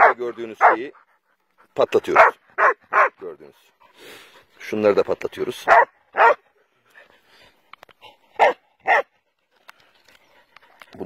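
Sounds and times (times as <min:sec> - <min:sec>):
dog barking: 0:00.0 - 0:00.9, 0:02.1 - 0:03.2, 0:05.6 - 0:06.5, 0:08.4 - 0:09.1.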